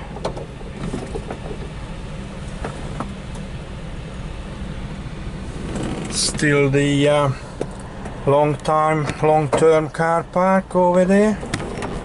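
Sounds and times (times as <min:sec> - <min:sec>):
van engine droning: 0:00.0 - 0:12.0.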